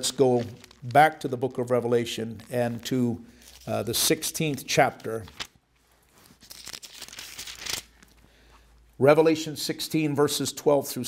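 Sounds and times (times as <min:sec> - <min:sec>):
thin pages rustling: 0:00.0 - 0:08.2.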